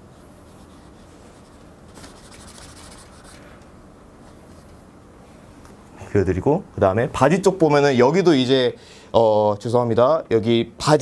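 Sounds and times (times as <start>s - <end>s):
crayon scratching on paper: 0.6s - 3.4s.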